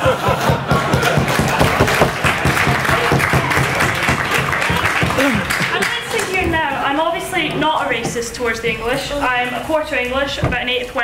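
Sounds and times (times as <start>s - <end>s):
audience laughing: 0.0s - 6.5s
audience clapping: 0.0s - 6.8s.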